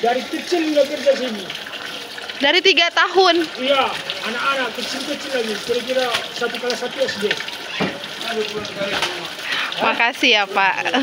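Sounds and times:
man talking: 0.0 - 1.6, 3.6 - 7.4, 8.1 - 9.4.

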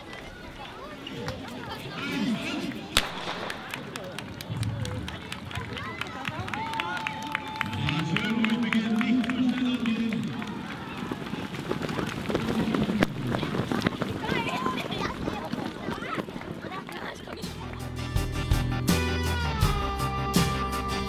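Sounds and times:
runners' footsteps on track: 2.7 - 17.8.

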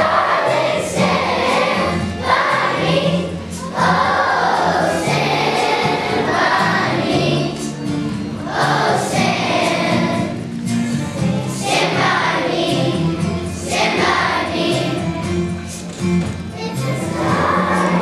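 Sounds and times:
children's choir singing: 0.0 - 18.0.

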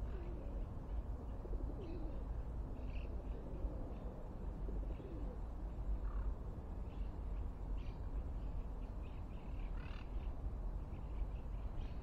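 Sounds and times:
dove cooing: 0.0 - 0.6, 1.4 - 2.2, 4.6 - 5.4
faint bird chirp: 5.9 - 12.0.

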